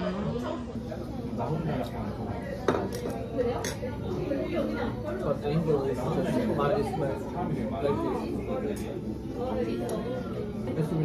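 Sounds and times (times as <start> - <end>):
low restaurant chatter: 0.0 - 11.0.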